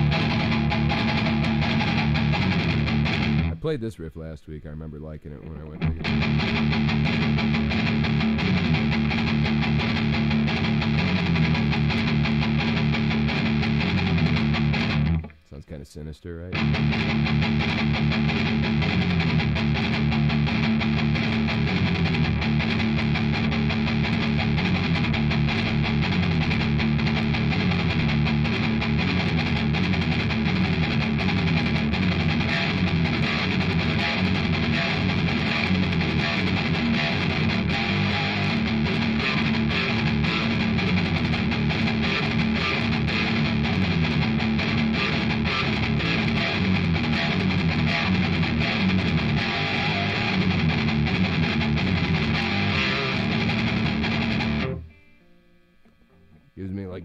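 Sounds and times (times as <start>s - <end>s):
electric guitar riff: 0.0s - 3.8s, 5.0s - 15.5s, 16.5s - 57.0s.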